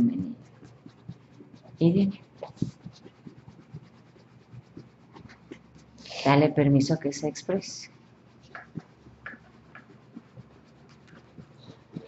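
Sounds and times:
scratchy rustles: 0.0s - 12.0s.

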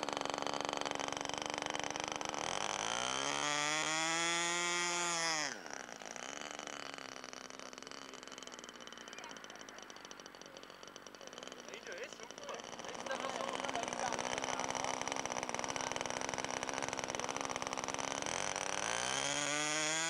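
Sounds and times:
model airplane engine buzzing: 0.0s - 20.0s.

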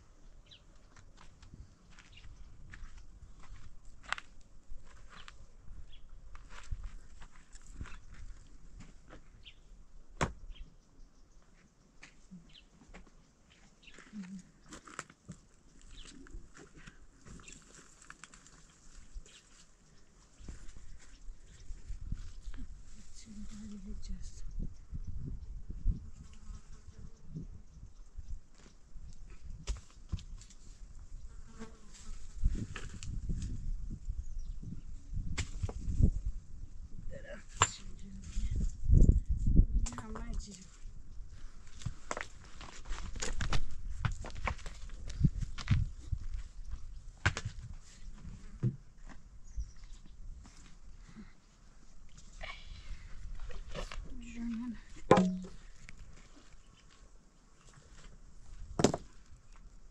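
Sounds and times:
footsteps crunching on stony ground: 0.8s - 9.5s, 11.4s - 23.1s, 40.0s - 50.8s
sharp knock: 55.1s - 55.6s.

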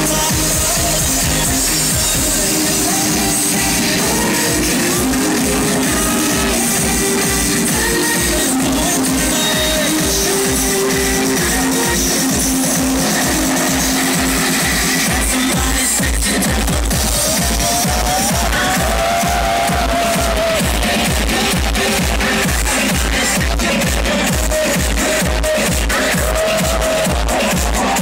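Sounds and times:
electronic dance music: 0.0s - 28.0s.

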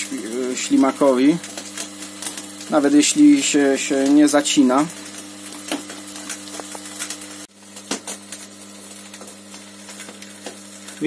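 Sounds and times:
electric motor and gearbox humming: 0.0s - 11.0s.

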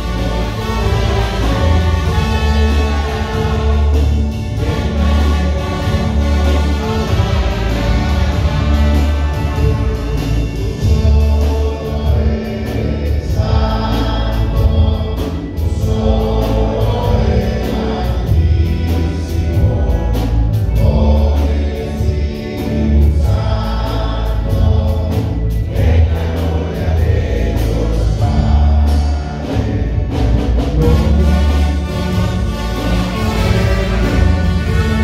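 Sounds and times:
choir singing a hymn: 0.0s - 35.0s
instrumental accompaniment: 0.0s - 35.0s
strong bass notes: 0.0s - 35.0s.

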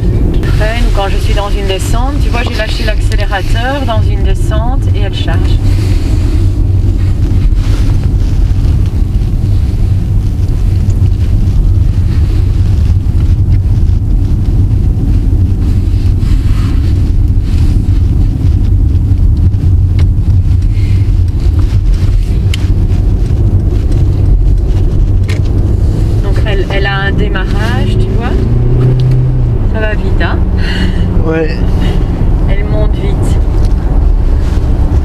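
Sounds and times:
road noise inside car: 0.0s - 35.0s
wind noise: 0.0s - 35.0s.

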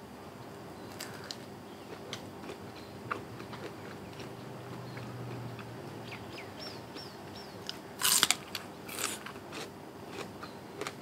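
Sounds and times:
crunchy bite: 7.7s - 11.0s.

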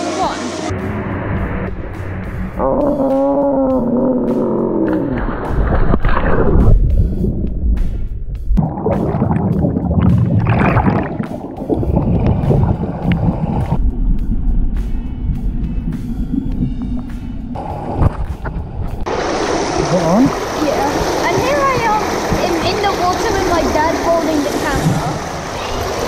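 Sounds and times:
muffled underwater bubbling: 8.6s - 13.8s, 15.4s - 26.0s
pool water splashing: 8.6s - 13.8s, 19.0s - 26.0s.

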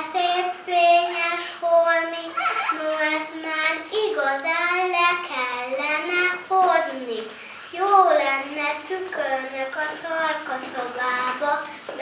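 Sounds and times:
girl singing: 0.0s - 12.0s.

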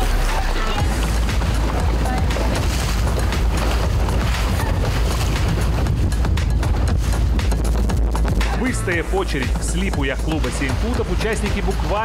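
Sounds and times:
background music: 0.0s - 12.0s
wind buffeting microphone: 0.8s - 12.0s.

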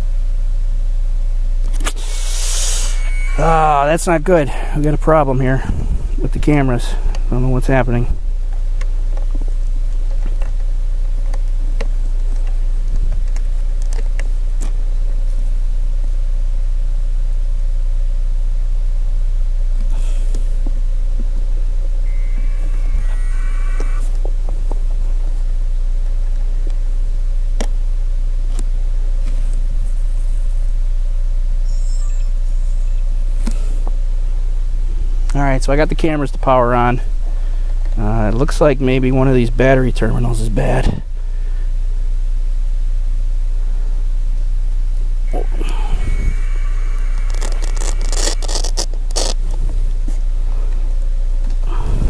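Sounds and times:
faint hum: 0.0s - 52.0s
low rumble: 1.9s - 11.3s, 45.1s - 52.0s
electronic beeps: 2.6s - 4.0s, 22.1s - 24.0s
small clicks and handling noises: 47.2s - 49.6s.

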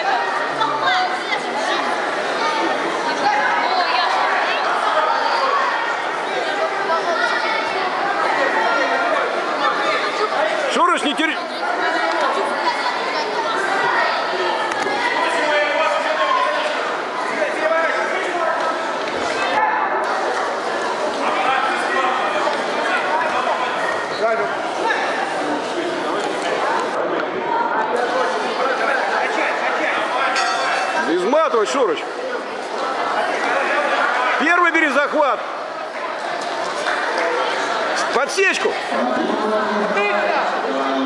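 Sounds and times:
crowd of voices talking: 0.0s - 41.0s.

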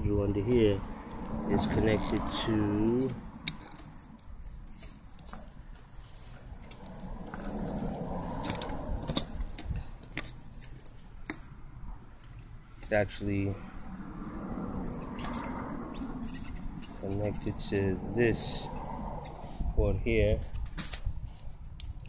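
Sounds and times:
clicks and rustles of wiring: 1.2s - 11.6s, 20.4s - 22.0s.

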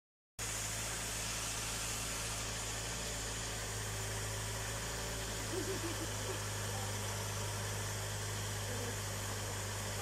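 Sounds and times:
car engine idling: 0.4s - 10.0s.

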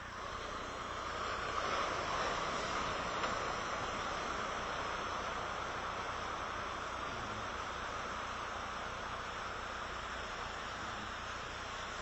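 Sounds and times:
ocean surf rushing: 0.0s - 12.0s.

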